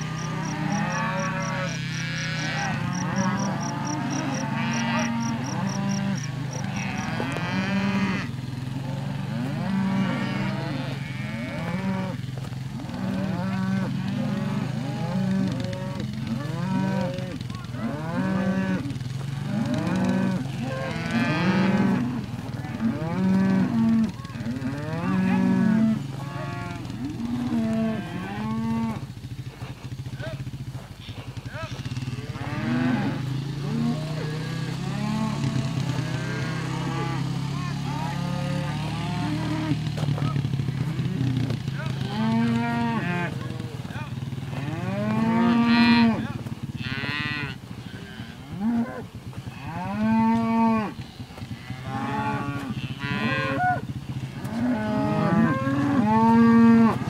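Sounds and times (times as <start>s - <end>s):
cattle mooing: 0.0s - 29.1s, 30.2s - 57.0s.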